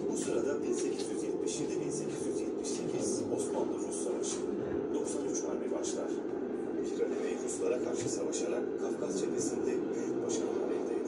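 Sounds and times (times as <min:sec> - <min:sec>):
narrator voice over loudspeakers: 0:00.0 - 0:11.0
steady low hum: 0:00.0 - 0:11.0.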